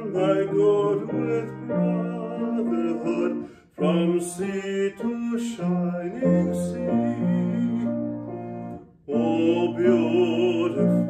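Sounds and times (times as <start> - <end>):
hymn on keyboard: 0.0 - 11.0
man singing: 0.0 - 11.0.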